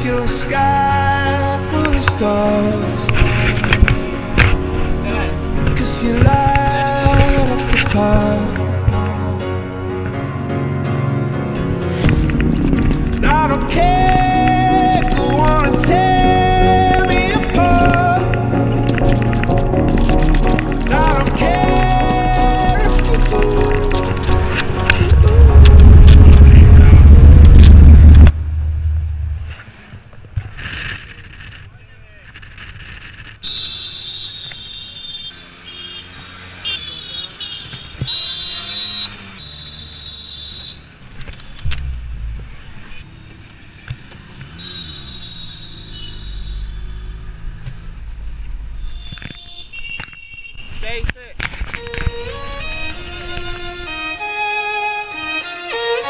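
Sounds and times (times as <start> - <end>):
engine and road noise: 0.0 - 56.0
loud distorted low rumble: 11.6 - 32.3
indistinct voices: 12.9 - 28.9
high held horn tones: 33.4 - 41.0, 44.5 - 47.3, 48.8 - 50.8.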